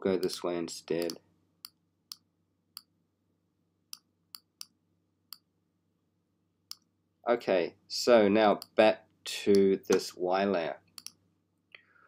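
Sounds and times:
computer mouse clicking: 10.9s - 11.2s.

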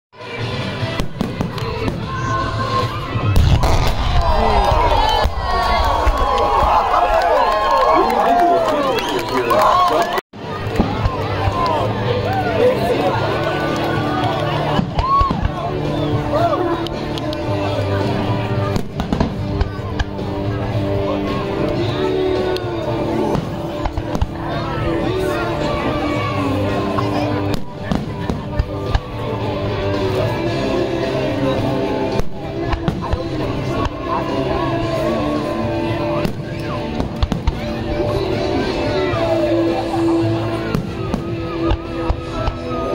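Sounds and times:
music: 0.1s - 42.9s
crowd voices: 0.2s - 42.9s
fireworks bursting with bangs: 0.8s - 6.3s, 18.6s - 20.3s, 23.3s - 24.4s, 27.4s - 29.2s, 32.1s - 34.1s, 36.2s - 37.7s, 40.6s - 42.8s
fireworks bangs: 0.9s - 6.7s
deep rumble of explosions: 3.1s - 6.9s.

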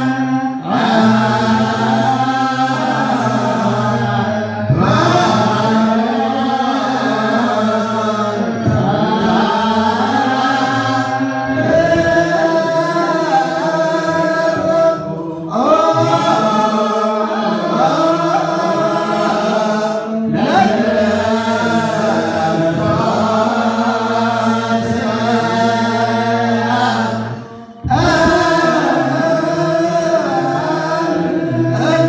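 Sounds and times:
men singing liturgical chant: 0.0s - 32.0s.

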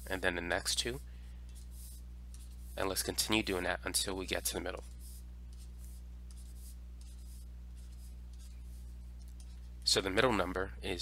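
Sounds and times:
stylus scratching on tablet: 0.0s - 9.7s
steady low hum: 0.0s - 11.0s.

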